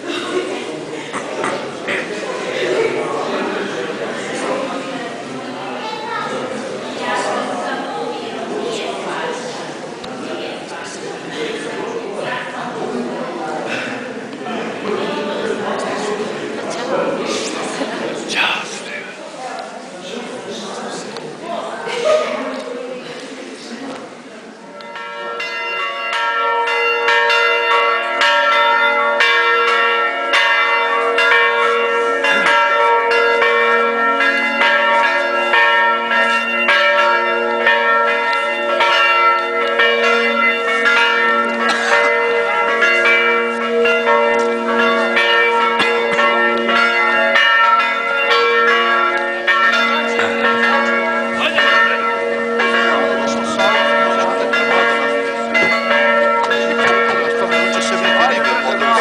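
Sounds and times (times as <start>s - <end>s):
church bells ringing: 1.7s - 18.0s, 24.7s - 59.0s.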